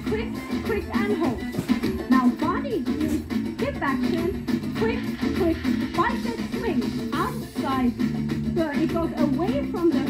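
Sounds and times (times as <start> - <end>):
upbeat dance music: 0.0 - 10.0.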